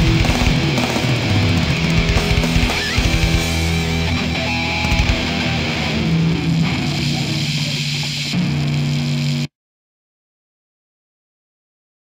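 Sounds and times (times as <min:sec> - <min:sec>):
thrash metal recording: 0:00.0 - 0:09.4
distorted electric guitar: 0:00.0 - 0:09.5.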